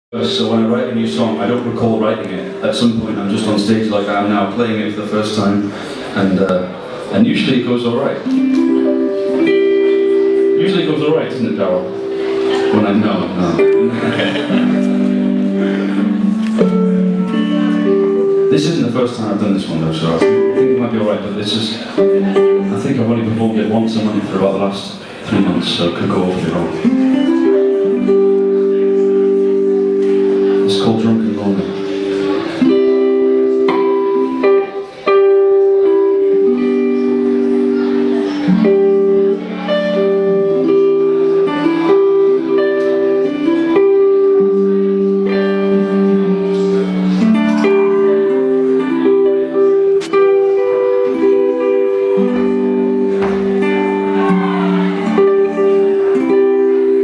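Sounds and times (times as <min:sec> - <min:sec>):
electric guitar chord ringing: 0:08.1 - 0:23.4, 0:26.4 - 0:57.0.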